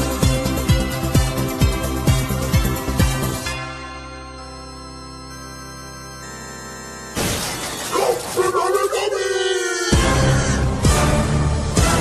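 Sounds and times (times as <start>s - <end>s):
soft keyboard music: 0.0s - 8.7s
crash of something shattering: 7.2s - 8.5s
person calling out: 7.9s - 10.7s.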